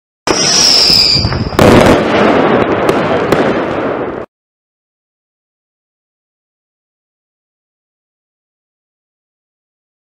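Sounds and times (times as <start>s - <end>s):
firework whistle: 0.3s - 2.0s
firework bang: 0.3s - 4.3s
firework crackling: 0.3s - 4.3s.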